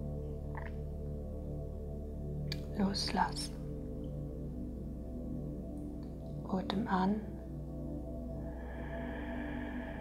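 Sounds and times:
ambient meditation music: 0.0s - 10.0s.

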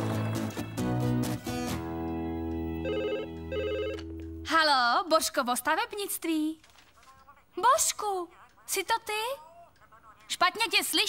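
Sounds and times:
desk telephone ringing: 2.7s - 4.3s.

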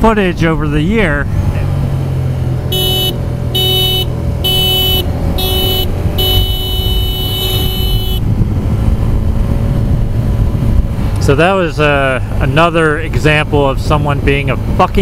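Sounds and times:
motorcycle engine rumble: 0.0s - 15.0s
vehicle horn honking: 2.7s - 8.3s
wind noise: 4.4s - 11.4s.

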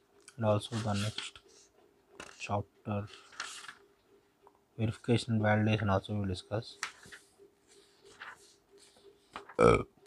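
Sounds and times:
paper rustling: 0.7s - 1.5s, 2.2s - 3.9s, 6.8s - 9.6s.

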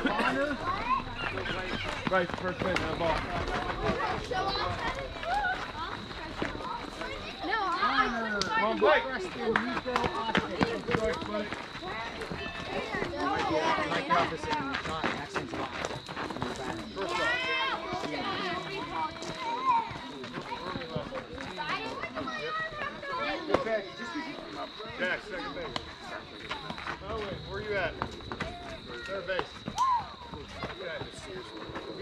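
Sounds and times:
children and adults talking: 0.0s - 32.0s.

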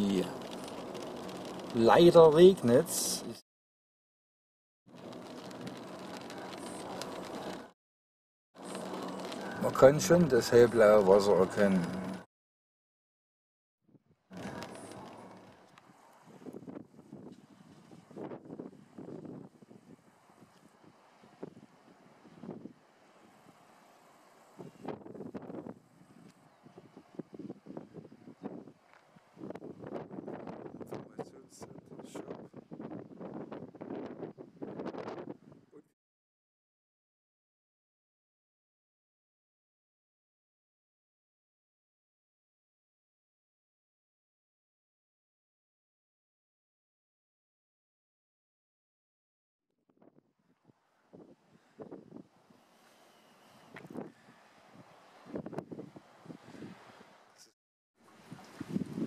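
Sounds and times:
rain on a car roof: 0.0s - 3.3s, 4.9s - 7.7s, 8.6s - 12.2s, 14.3s - 15.8s
wind buffeting microphone: 14.3s - 23.6s, 24.6s - 35.8s, 51.1s - 52.6s, 53.6s - 57.2s, 58.2s - 59.0s.

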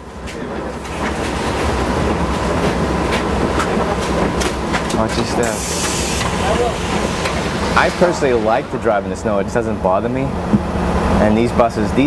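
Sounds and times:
bus engine rumbling: 0.0s - 12.0s.

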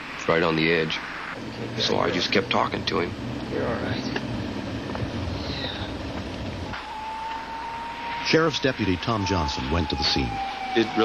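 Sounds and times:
steady high tone: 1.4s - 11.0s
vehicle engine droning: 1.4s - 11.0s.

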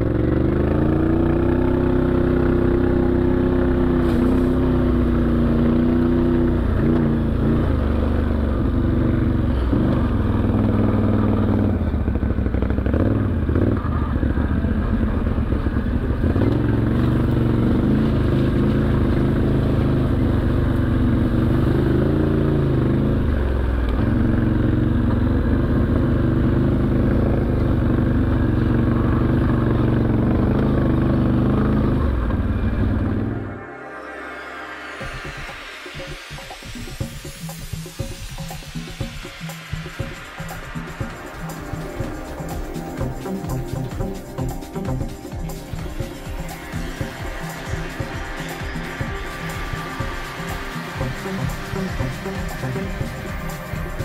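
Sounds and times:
quad bike engine revving: 0.0s - 33.4s.

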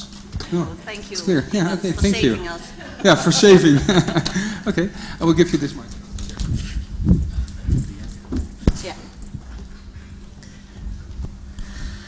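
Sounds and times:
steady electrical hum: 0.0s - 12.0s
microphone handling rumble: 6.0s - 10.2s.

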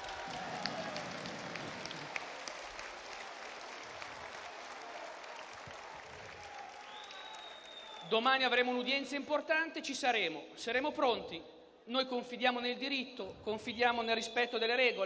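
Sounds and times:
crowd applauding: 0.0s - 8.2s.

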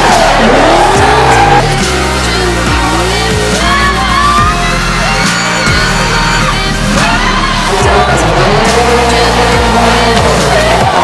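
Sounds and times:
car engine revving: 0.0s - 11.0s
electronic music: 0.0s - 11.0s.

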